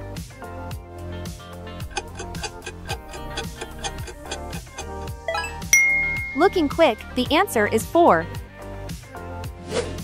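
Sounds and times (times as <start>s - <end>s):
quiz background music: 1.2s - 10.0s
clock-like ticking: 1.9s - 6.9s.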